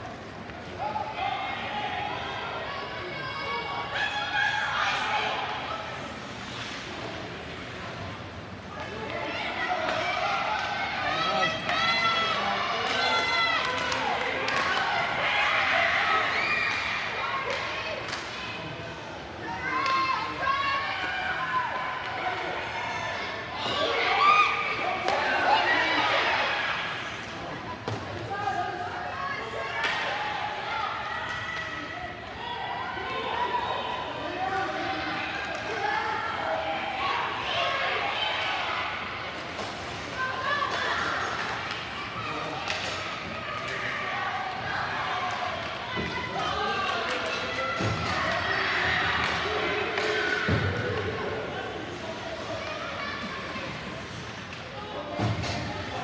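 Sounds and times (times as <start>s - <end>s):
hockey sticks and puck knocks: 42.6s - 43.9s, 46.8s - 48.4s.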